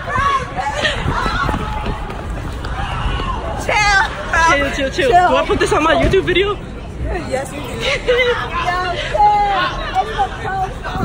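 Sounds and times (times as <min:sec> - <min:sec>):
crowd chatter: 0:00.0 - 0:11.0
footsteps running on sidewalk: 0:00.1 - 0:03.1.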